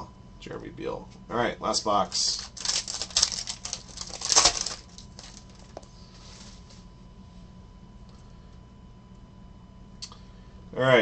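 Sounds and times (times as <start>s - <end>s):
foil wrapper crinkling: 2.1s - 5.8s.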